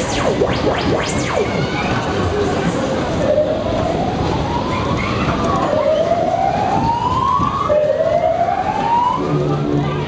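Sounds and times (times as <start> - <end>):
whooping siren: 0.0 - 9.4.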